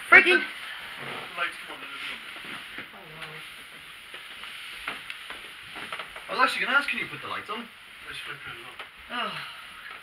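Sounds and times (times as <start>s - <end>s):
steady hiss: 0.0s - 10.0s.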